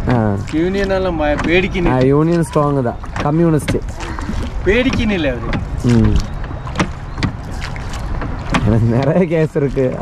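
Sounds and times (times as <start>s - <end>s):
oars knocking in rowlocks: 0.0s - 10.0s.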